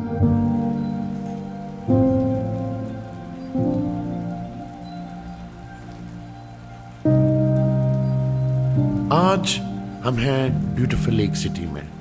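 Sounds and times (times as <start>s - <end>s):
low sustained music chords: 0.0s - 12.0s
steady rain falling: 0.0s - 12.0s.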